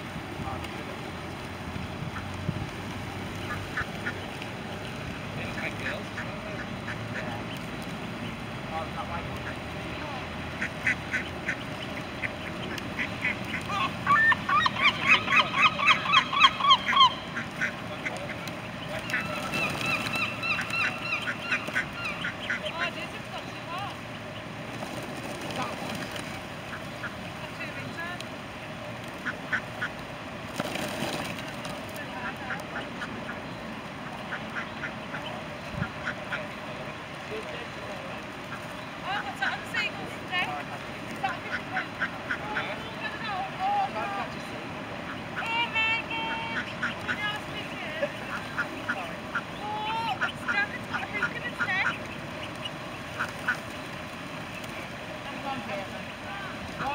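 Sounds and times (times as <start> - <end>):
mallards calling: 1.3 - 2.6, 3.2 - 30.1, 30.8 - 56.9.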